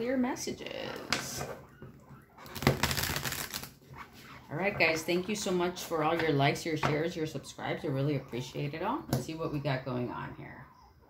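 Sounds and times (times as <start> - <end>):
cards being riffle-shuffled: 2.6 - 3.8.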